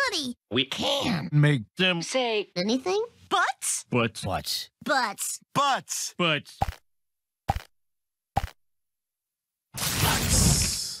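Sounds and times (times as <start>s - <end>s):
pop sound effects: 6.6s - 6.9s, 7.5s - 7.8s, 8.4s - 8.6s.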